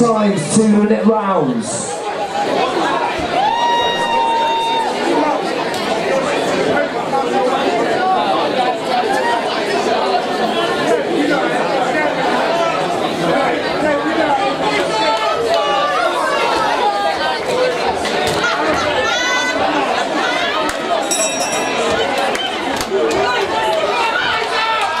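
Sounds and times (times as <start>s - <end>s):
crowd chattering in large hall: 0.0s - 25.0s.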